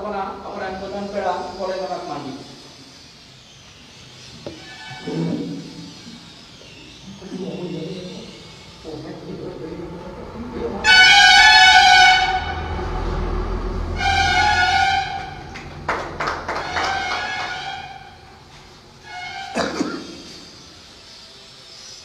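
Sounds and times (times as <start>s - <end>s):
loud horn tones: 10.6s - 20.5s.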